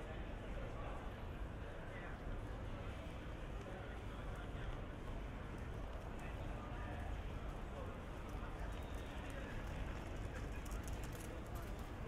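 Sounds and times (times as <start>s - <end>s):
indistinct voices of passers-by: 0.0s - 12.0s.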